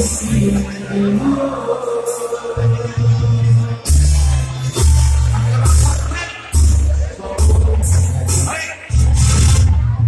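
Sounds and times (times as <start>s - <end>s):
brass band playing: 3.8s - 10.0s.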